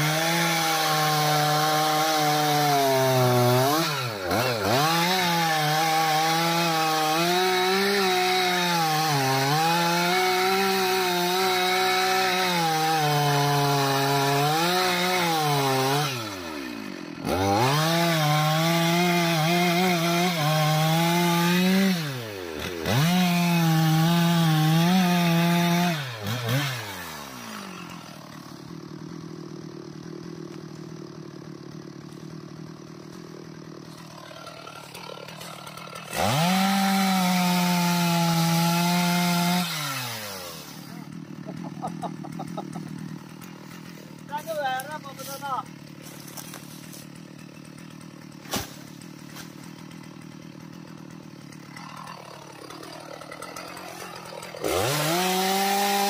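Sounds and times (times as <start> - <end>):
chainsaw cutting: 0.0 - 56.0.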